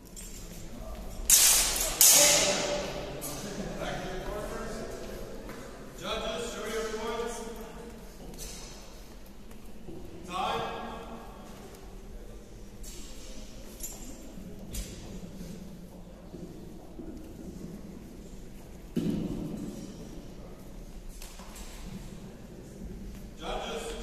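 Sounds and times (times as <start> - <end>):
loud sharp hits echoing: 1.3 - 3.2.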